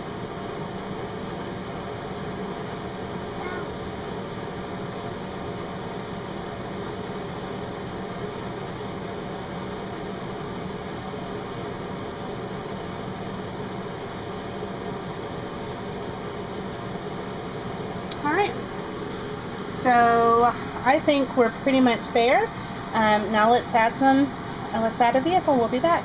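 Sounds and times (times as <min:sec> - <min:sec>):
background hum and hiss: 0:00.0 - 0:26.0.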